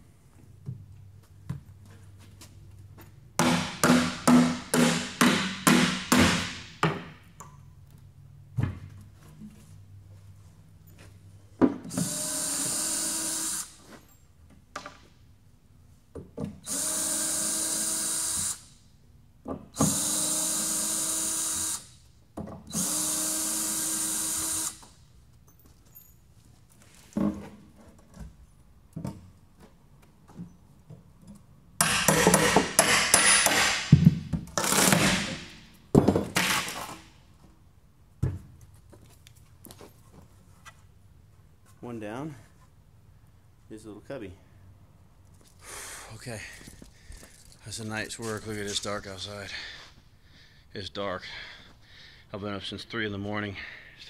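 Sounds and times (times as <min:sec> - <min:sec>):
loud knocks and clattering: 0:03.4 - 0:07.2, 0:31.8 - 0:37.0
cordless drill whining: 0:12.0 - 0:13.8, 0:16.6 - 0:18.6, 0:22.7 - 0:24.8.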